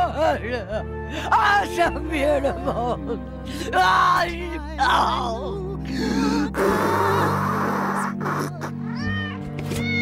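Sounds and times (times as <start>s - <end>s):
cats meowing: 8.9s - 10.0s.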